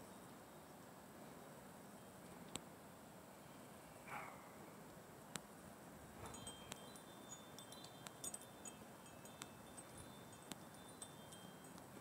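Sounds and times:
quiet steady hiss: 0:00.0 - 0:12.0
light tinkling clinks: 0:06.2 - 0:12.0.

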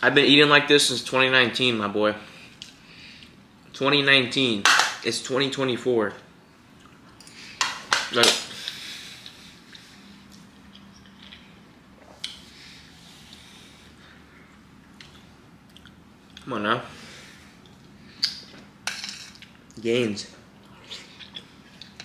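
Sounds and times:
low room noise: 0:00.0 - 0:22.0.

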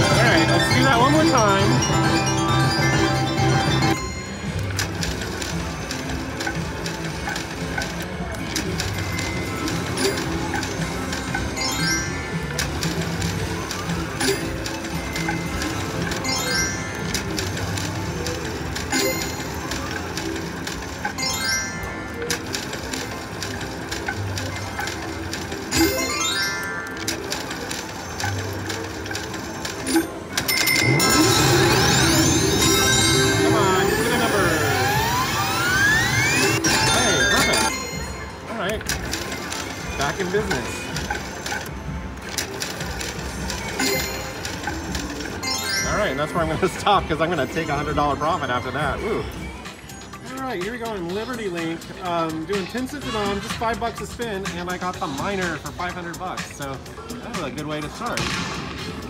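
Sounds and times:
music: 0:00.0 - 0:59.0
slot machine spin with rising tone: 0:00.0 - 0:59.0.

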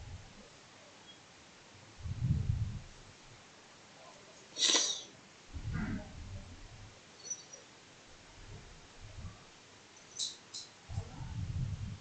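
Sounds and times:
person sniffing: 0:04.6 - 0:05.1.

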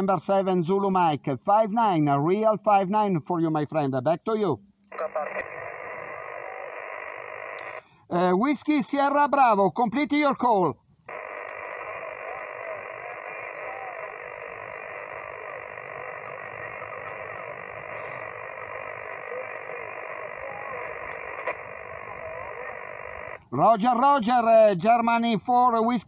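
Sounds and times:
distorted voice over radio: 0:04.9 - 0:08.3, 0:11.1 - 0:26.0
radio static hiss: 0:04.9 - 0:08.3, 0:11.1 - 0:24.2.

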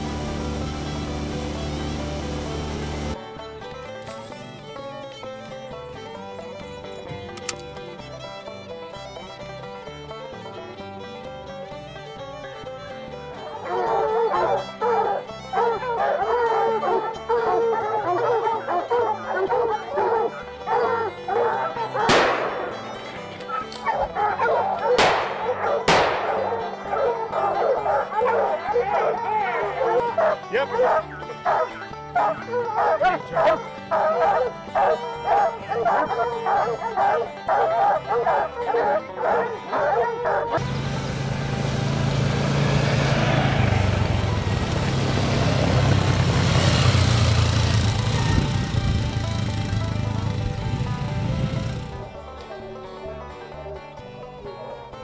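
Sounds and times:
background music with bass line: 0:00.0 - 0:41.1, 0:47.2 - 0:55.0
dogs barking and baying: 0:13.3 - 0:40.6
sharp cracks: 0:22.0 - 0:23.9, 0:25.0 - 0:26.8.

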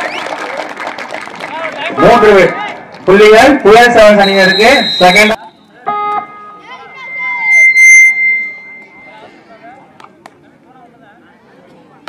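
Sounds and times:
long high whistle blast: 0:04.2 - 0:05.4, 0:07.0 - 0:09.2
crowd voices: 0:04.5 - 0:12.0.

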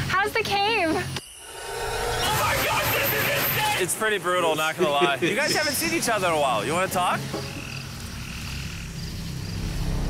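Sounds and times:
frogs trilling: 0:04.8 - 0:09.9.

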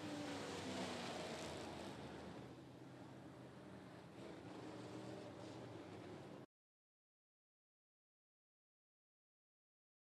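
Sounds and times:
distant race car engines droning: 0:00.0 - 0:06.4.

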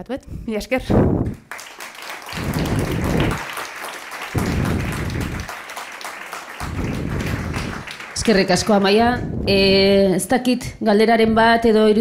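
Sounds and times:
audience applauding: 0:01.3 - 0:09.2
dull low rumbles: 0:04.4 - 0:05.5, 0:06.6 - 0:07.8.

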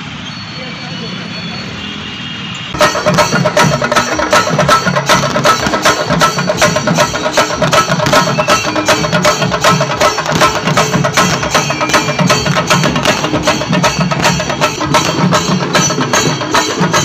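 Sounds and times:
drums beaten with sticks: 0:02.7 - 0:17.0.

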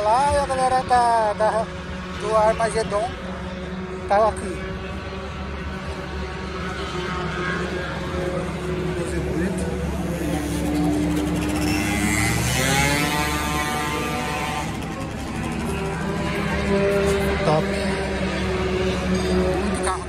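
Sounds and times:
car engine revving: 0:00.4 - 0:20.0.

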